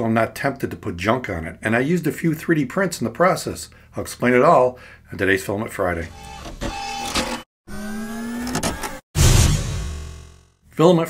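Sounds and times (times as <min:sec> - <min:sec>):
small electric motor whine: 0:06.2 - 0:10.4.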